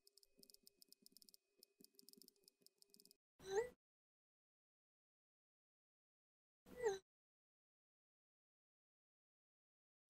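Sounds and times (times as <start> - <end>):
on-screen keyboard clicks: 0.0 - 3.2.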